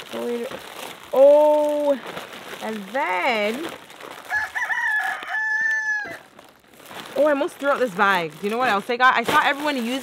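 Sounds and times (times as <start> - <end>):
rooster crowing: 4.3 - 6.3.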